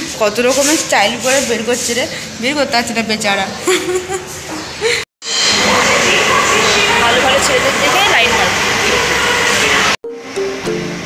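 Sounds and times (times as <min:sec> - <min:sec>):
loud dense noise: 0:00.0 - 0:11.0
plucked-string music: 0:10.1 - 0:11.0.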